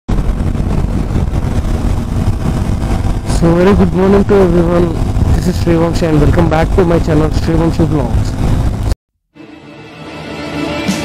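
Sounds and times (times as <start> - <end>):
motorcycle engine running: 0.1 - 8.9
wind and road noise: 0.1 - 9.0.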